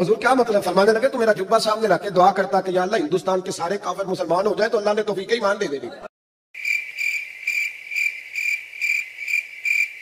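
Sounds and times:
cricket chirping: 0:06.6 - 0:10.0.

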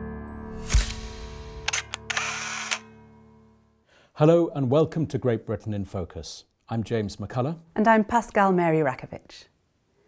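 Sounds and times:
camera whirring burst: 0:01.7 - 0:02.9
camera shutter clicks: 0:01.7 - 0:03.0.

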